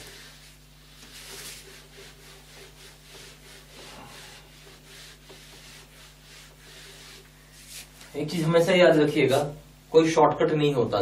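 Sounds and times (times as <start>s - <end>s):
duster wiping whiteboard: 0.0s - 9.0s.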